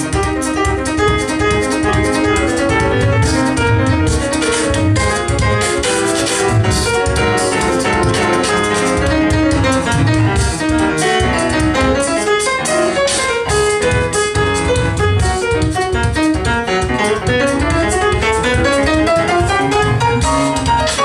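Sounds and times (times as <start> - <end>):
grand piano jazz solo: 0.0 - 21.0
mouth-made kick-drum thumps: 0.0 - 21.0.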